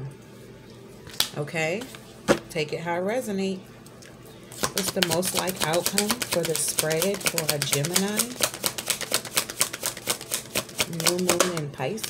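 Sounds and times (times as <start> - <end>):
cards being shuffled: 4.5 - 12.0.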